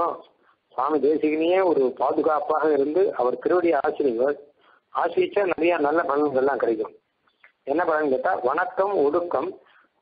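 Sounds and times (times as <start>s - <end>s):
man talking: 0.0s - 7.0s, 7.6s - 9.7s.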